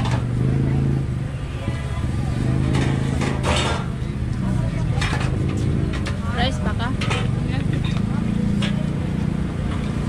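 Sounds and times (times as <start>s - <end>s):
road traffic engine rumble: 0.0s - 10.0s.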